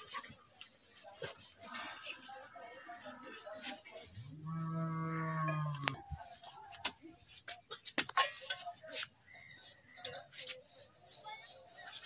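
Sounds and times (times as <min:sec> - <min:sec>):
cow mooing: 0:04.4 - 0:06.0.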